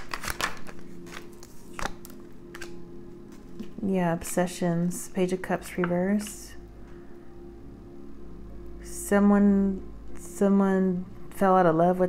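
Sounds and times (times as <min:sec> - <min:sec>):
cards clicking and tapping: 0:00.0 - 0:02.7
faint steady hum: 0:00.6 - 0:12.0.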